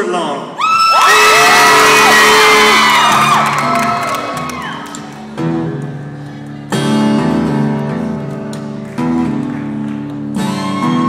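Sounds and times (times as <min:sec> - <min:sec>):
audience cheering: 0:00.6 - 0:05.2.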